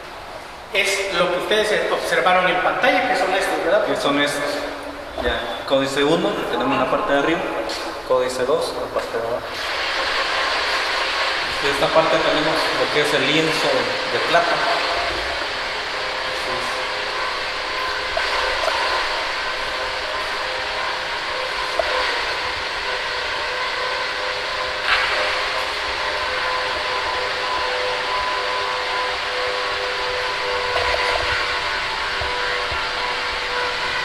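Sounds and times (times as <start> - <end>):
room noise hiss: 0.0 - 34.0.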